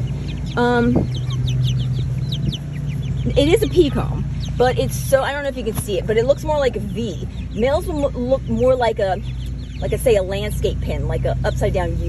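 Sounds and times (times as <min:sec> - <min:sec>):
chicks peeping: 0:00.0 - 0:12.0
steady low hum: 0:00.0 - 0:12.0.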